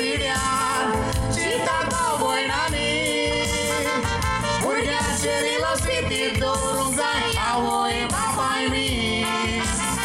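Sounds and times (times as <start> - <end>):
live band music: 0.0 - 10.0
man and woman singing: 0.0 - 10.0.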